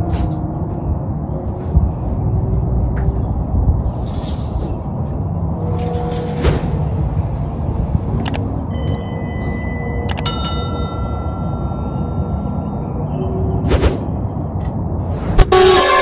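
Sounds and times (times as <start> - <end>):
city traffic rumble: 0.0 - 16.0
click: 8.2 - 8.4
ringing bell chime: 8.7 - 13.2.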